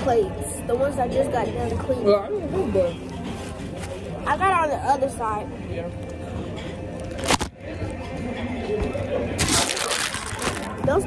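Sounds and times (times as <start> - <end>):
faint restaurant chatter: 0.0 - 11.0
rustling handling noise: 3.0 - 4.3.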